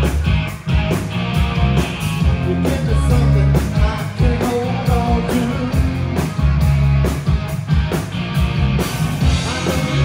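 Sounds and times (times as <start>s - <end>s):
distorted electric guitar: 0.0s - 10.0s
drum kit beat: 0.0s - 10.0s
electric bass: 0.0s - 10.0s.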